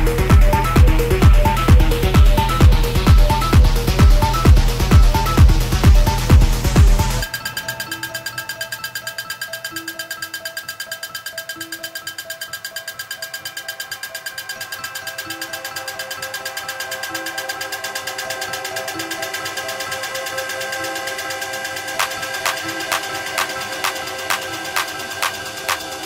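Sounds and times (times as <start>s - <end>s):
held synth chords: 0.0s - 26.0s
pulsing bright synth: 0.0s - 26.0s.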